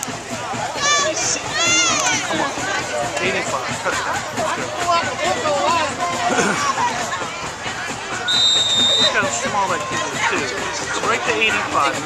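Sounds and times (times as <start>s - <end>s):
crowd chatter: 0.0s - 12.0s
referee's whistle blown: 8.2s - 9.3s.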